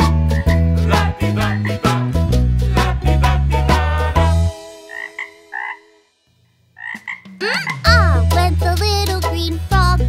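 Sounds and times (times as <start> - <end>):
cartoon frog croaks: 4.9 - 5.9, 6.8 - 8.2
children's song with singing: 7.8 - 10.0.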